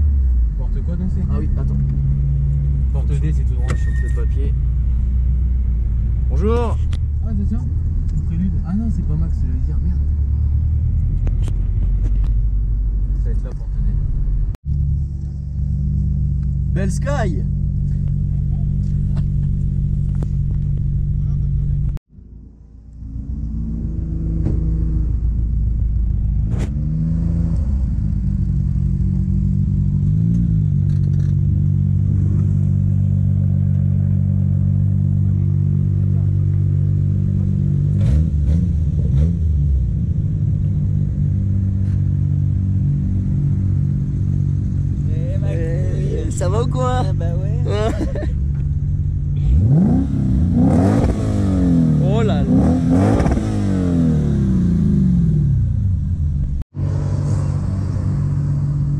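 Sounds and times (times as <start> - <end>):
car engine idling: 0.0 - 26.5, 27.8 - 50.6.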